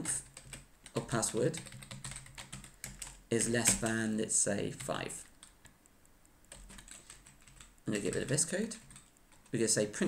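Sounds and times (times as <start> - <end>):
computer keyboard typing: 0.0 - 5.8, 6.4 - 10.0.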